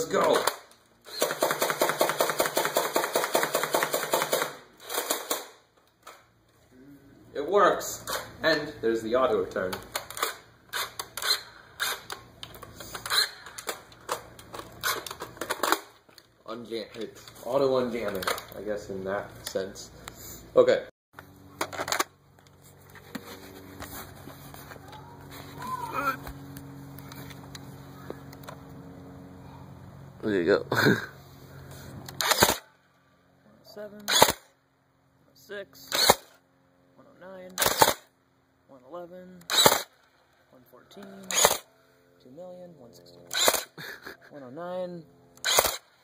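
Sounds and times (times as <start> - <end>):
toy blaster firing full auto: 0.2 - 5.6, 9.9 - 12.2, 13.0 - 13.8, 32.1 - 32.7, 34.0 - 34.5, 35.9 - 36.4, 37.6 - 38.1, 39.5 - 40.0, 41.2 - 41.7, 43.3 - 43.8, 45.4 - 46.0
short motor burst: 1.0 - 2.2, 10.0 - 12.2, 12.8 - 13.8, 31.4 - 32.8, 34.0 - 34.5, 35.9 - 36.4, 39.5 - 40.0, 41.3 - 41.7, 43.3 - 44.2, 45.3 - 46.0.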